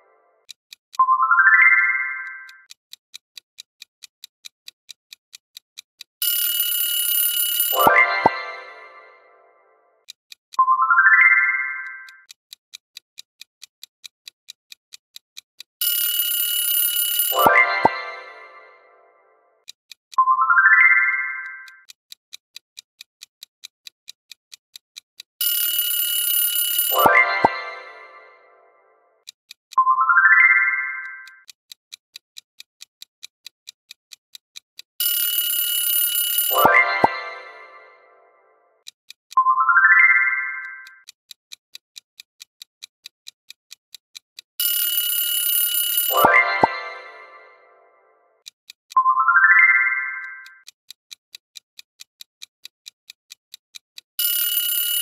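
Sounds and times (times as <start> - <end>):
clock ticking: 0.0 - 9.3, 10.0 - 55.0
alarm clock bell ringing: 6.2 - 9.2, 15.8 - 18.8, 20.3 - 21.8, 25.4 - 28.4, 29.9 - 31.4, 35.0 - 38.0, 39.5 - 41.0, 44.6 - 47.8, 49.0 - 50.6, 54.2 - 55.0
rising chime: 46.1 - 47.8.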